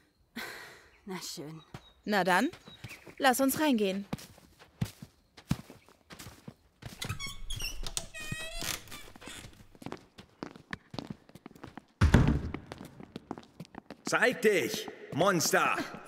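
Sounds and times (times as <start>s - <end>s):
footsteps: 1.8s - 16.0s
wooden door creaking open: 6.9s - 9.8s
door shutting with deep thud: 12.0s - 12.6s.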